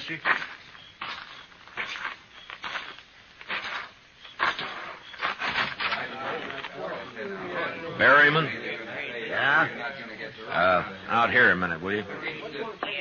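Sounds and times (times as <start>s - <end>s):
slow footsteps: 0.0s - 6.8s.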